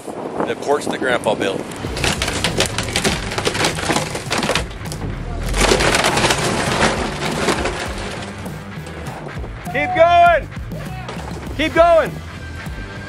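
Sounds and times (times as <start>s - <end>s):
structure collapsing with heavy crash: 1.6s - 9.4s
timber cracking and splintering: 1.6s - 9.4s, 11.0s - 12.1s.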